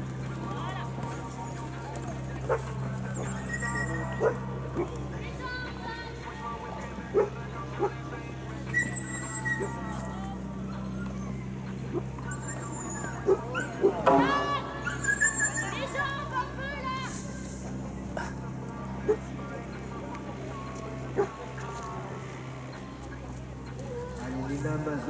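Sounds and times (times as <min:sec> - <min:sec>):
distant voices: 0:00.0 - 0:25.0
low hum: 0:00.0 - 0:25.0
high yelping calls: 0:08.7 - 0:10.1, 0:10.7 - 0:16.6.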